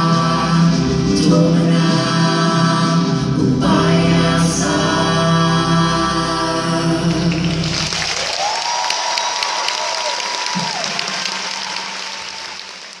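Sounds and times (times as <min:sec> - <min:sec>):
audience applauding and cheering: 0:07.2 - 0:13.0.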